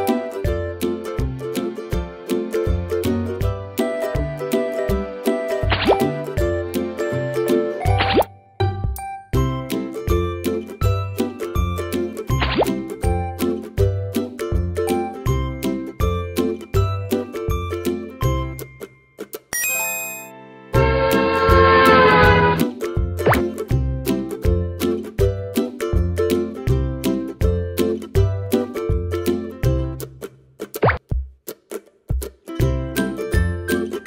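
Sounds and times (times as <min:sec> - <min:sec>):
light children's background music: 0:00.0 - 0:34.0
rising pop sound effect: 0:05.6 - 0:06.3, 0:07.8 - 0:08.4, 0:12.4 - 0:12.8, 0:20.8 - 0:23.6, 0:30.8 - 0:31.0.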